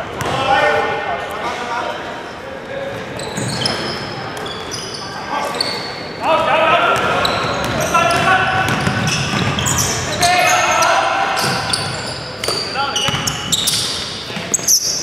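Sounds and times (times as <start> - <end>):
sneaker squeaks: 2.3 - 6.2, 7.0 - 15.0
players shouting: 6.2 - 13.6
basketball bouncing on wooden floor: 7.6 - 9.7.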